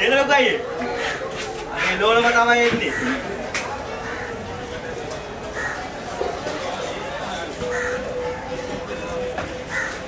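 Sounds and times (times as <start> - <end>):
background voices and activity: 0.0 - 10.0
crow cawing: 2.8 - 3.2, 4.0 - 4.5, 5.5 - 5.9, 7.6 - 8.3, 9.7 - 10.0.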